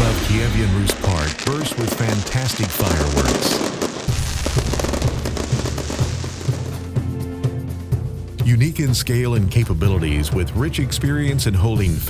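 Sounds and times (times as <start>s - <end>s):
fireworks crackling and popping: 0.0s - 7.0s.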